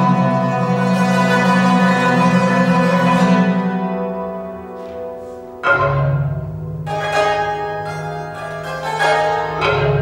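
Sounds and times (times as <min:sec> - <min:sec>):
hammered dulcimer: 0:00.0 - 0:10.0
marimba: 0:00.0 - 0:10.0.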